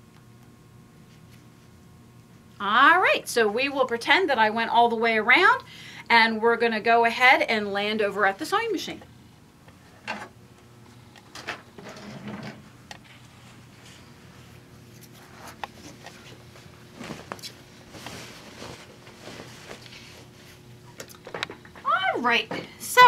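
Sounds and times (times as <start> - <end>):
faint steady hum: 0.0 - 23.0
fabric rustling: 15.0 - 20.6.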